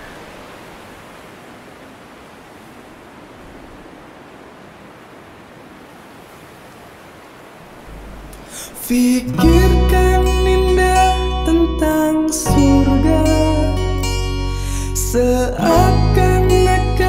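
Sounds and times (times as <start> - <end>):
steady rushing noise: 0.0 - 8.8.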